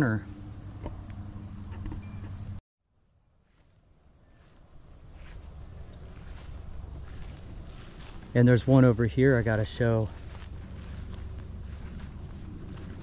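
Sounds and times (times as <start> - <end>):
insects chirping: 0.0 - 13.0.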